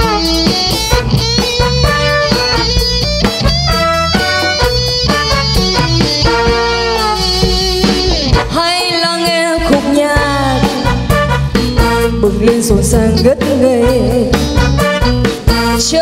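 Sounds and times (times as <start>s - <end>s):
drum kit: 0.0s - 16.0s
electric guitar lead: 0.0s - 16.0s.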